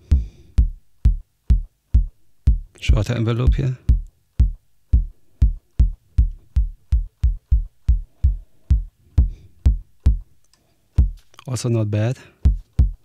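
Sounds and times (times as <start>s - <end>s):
synthesized kick drum thumps: 0.0s - 10.3s, 11.0s - 11.3s, 12.4s - 13.0s.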